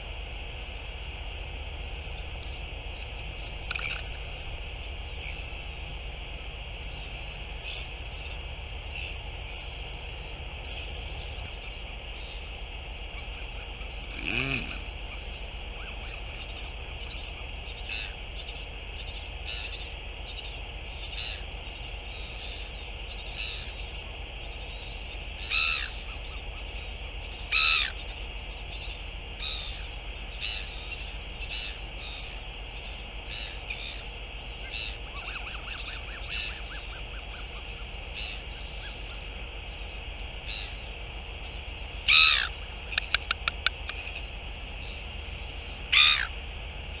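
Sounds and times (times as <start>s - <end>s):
steady high hiss: 0.0s - 47.0s
high-pitched bird calls: 24.5s - 39.8s, 40.4s - 44.2s, 44.8s - 46.4s
harsh bird call: 42.0s - 43.5s.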